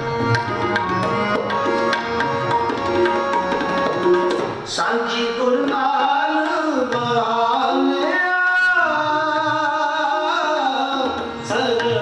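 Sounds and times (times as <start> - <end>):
harmonium held notes: 0.0 - 12.0
tabla rhythm: 0.0 - 12.0.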